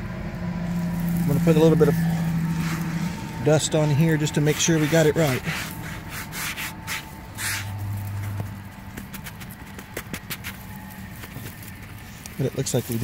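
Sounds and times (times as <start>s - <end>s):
low hum: 0.0s - 13.0s
hand brushing stone: 0.7s - 13.0s.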